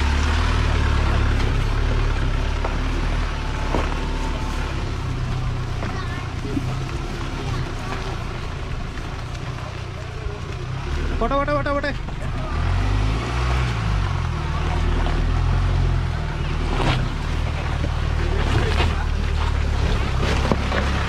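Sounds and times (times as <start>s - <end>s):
vehicle engine running at low speed: 0.0s - 21.0s.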